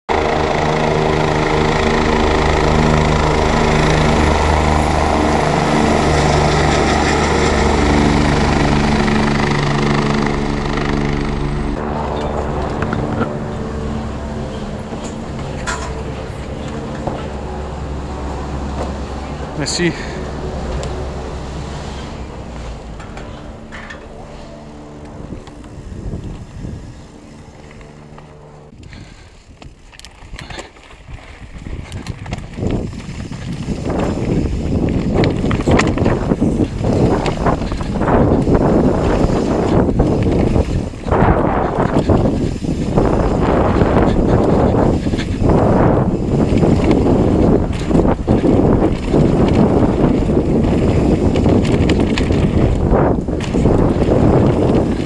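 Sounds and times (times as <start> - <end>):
machinery hum: 0.1 - 29.1
bike chain and suspension rattling: 0.1 - 55.0
wind buffeting microphone: 0.1 - 55.0
bike tyres on gravel: 12.2 - 55.0.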